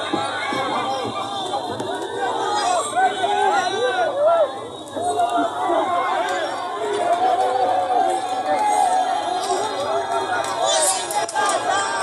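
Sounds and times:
crowd chattering and calling out: 0.0s - 12.0s.

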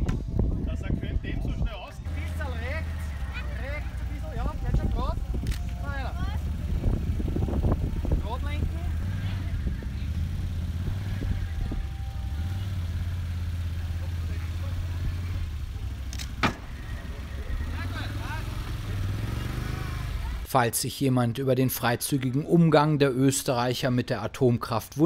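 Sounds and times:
quad bike engine running: 2.0s - 20.5s.

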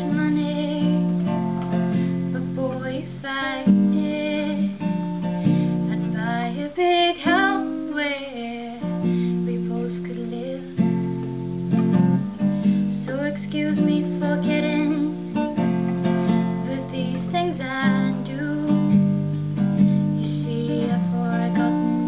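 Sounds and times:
girl singing slow song: 0.0s - 22.0s
strummed acoustic guitar: 0.0s - 22.0s.

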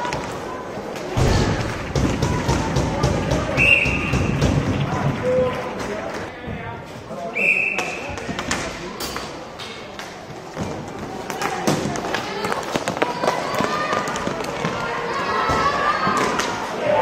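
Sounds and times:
sticks and skates clicking on plastic: 10.0s - 14.9s.

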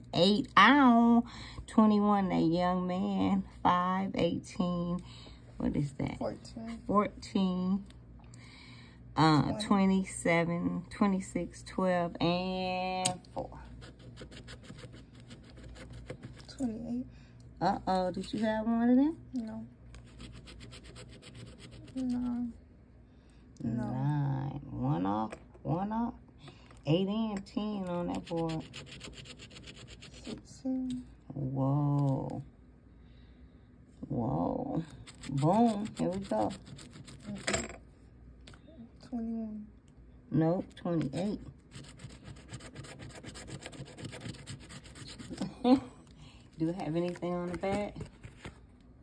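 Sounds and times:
person speaking: 9.2s - 10.2s
coin scratching lottery ticket: 13.8s - 16.5s, 20.0s - 22.3s, 28.1s - 30.4s, 35.0s - 37.6s, 41.0s - 45.4s.

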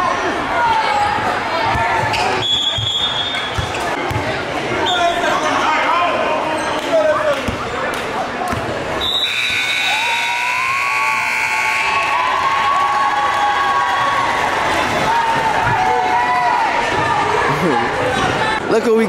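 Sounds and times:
voices and gym noise: 0.0s - 19.0s
scoreboard horn blast: 9.2s - 12.0s.

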